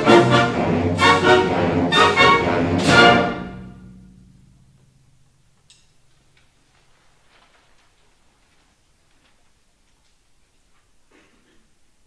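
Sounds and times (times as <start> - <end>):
rustling: 5.6 - 11.1.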